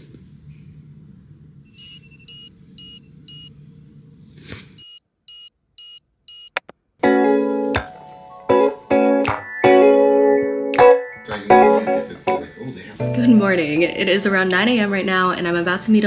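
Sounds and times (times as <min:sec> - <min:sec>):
electronic alarm beeping: 0:01.7 - 0:03.5, 0:04.8 - 0:06.6
piano and guitar music: 0:07.0 - 0:14.0.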